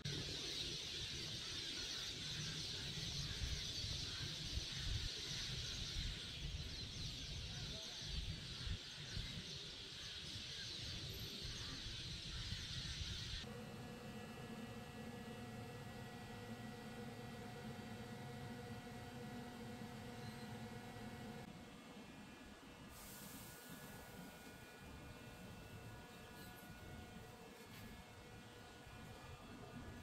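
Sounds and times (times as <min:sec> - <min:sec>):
birds chirping chorus: 0:00.1 - 0:21.5
exhaust fans humming: 0:13.4 - 0:21.9, 0:22.8 - 0:30.0.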